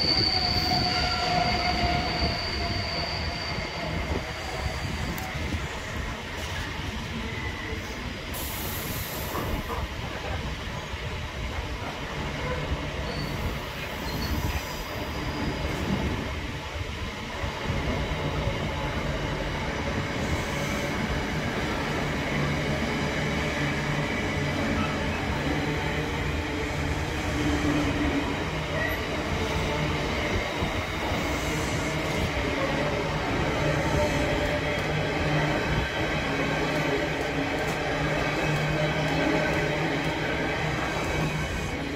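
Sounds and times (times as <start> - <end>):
freight train rolling past: 0.0 - 41.9.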